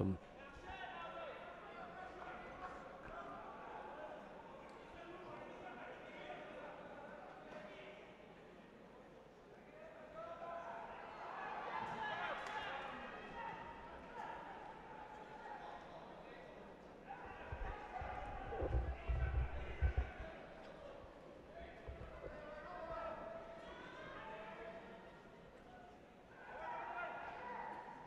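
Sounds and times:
voices calling out in hall: 0.0s - 7.4s, 9.7s - 28.0s.

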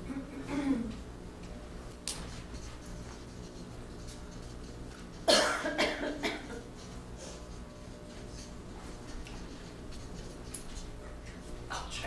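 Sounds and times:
person coughing: 0.0s - 1.0s, 5.2s - 6.7s.

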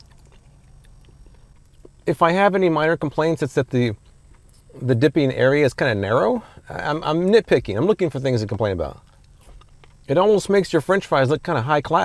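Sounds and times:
chewing fries: 0.0s - 2.0s
low steady hum: 0.0s - 12.0s.

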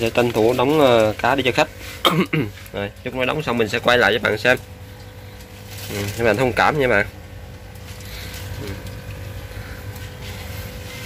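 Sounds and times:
low mechanical hum: 0.0s - 11.0s.

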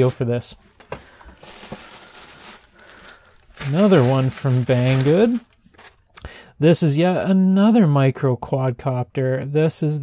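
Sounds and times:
packaging rustling: 0.0s - 6.1s.

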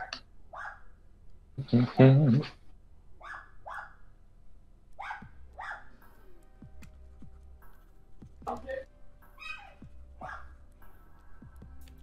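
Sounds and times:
dog barking: 0.0s - 0.9s, 3.2s - 4.0s, 5.0s - 5.9s, 10.2s - 10.6s
faint music: 4.3s - 12.0s.

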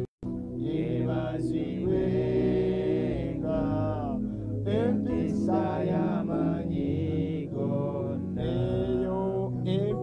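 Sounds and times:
sustained musical accompaniment: 0.2s - 10.0s
man singing chant-like notes: 0.6s - 10.0s.

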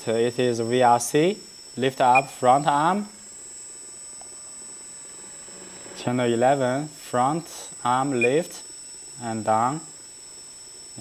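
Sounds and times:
hydraulic pump hum and hiss: 0.0s - 11.0s.

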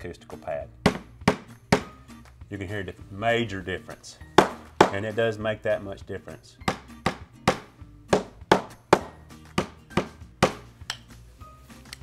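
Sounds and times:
hammer knocking on vinyl planks: 0.8s - 1.9s, 4.3s - 5.0s, 6.7s - 10.6s.

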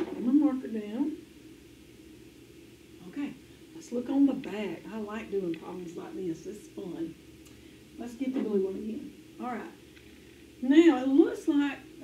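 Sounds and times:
faint low hum: 0.0s - 12.0s
person speaking: 3.0s - 7.2s.

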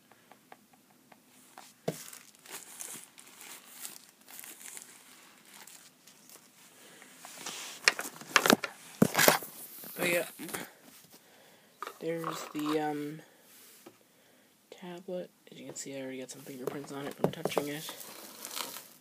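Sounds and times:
plastic wrapping crinkling: 1.8s - 10.6s, 16.7s - 19.0s.

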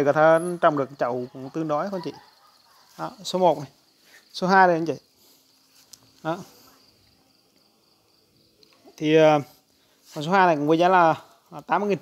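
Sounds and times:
high insect trill: 0.0s - 12.0s.

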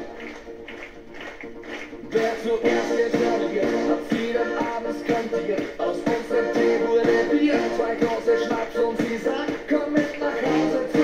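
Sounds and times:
person singing: 2.0s - 11.0s.

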